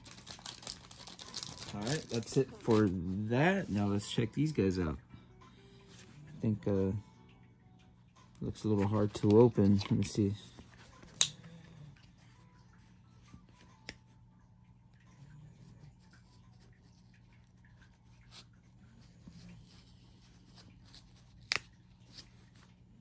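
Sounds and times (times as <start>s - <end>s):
plastic blister pack clicks and crackles: 0.0s - 3.0s.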